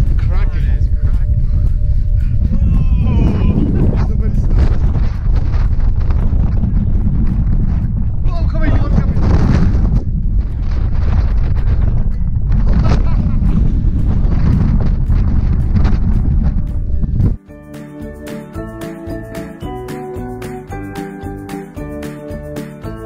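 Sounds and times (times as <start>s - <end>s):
music: 0.0s - 8.8s, 10.6s - 23.0s
wind buffeting microphone: 0.0s - 17.4s.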